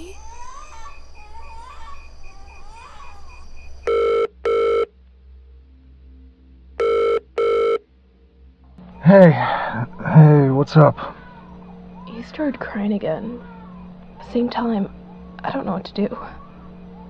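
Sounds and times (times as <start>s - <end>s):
telephone ringing: 3.9s - 4.9s, 6.8s - 7.8s.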